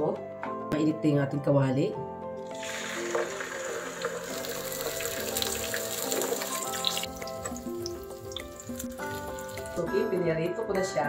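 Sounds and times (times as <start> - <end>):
background music: 0.0 - 11.0
fish sizzling in hot oil: 2.4 - 9.8.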